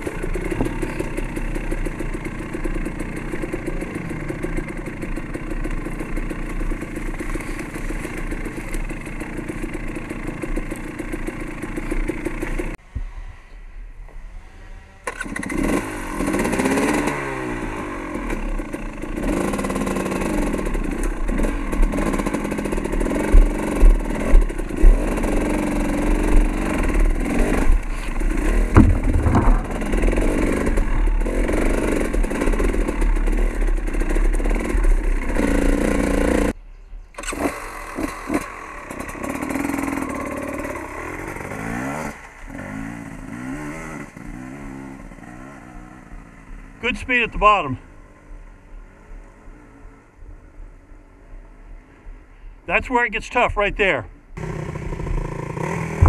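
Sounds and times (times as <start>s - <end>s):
dirt bike engine revving: 0.0s - 13.2s, 14.4s - 36.6s, 37.2s - 48.2s, 52.7s - 56.0s
sharp knocks: 28.5s - 30.9s.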